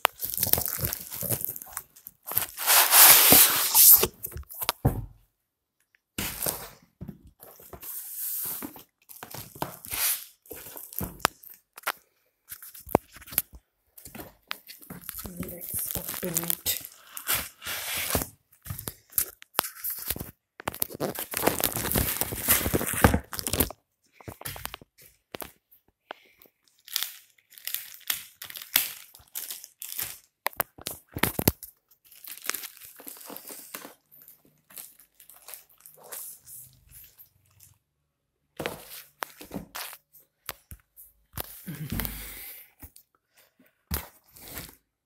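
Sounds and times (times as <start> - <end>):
plastic wrapping crinkling: 0.0 - 4.8, 8.6 - 37.8.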